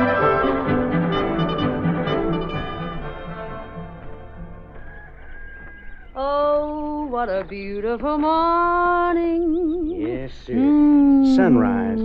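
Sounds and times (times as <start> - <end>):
orchestral music with brass: 0.0 - 4.8.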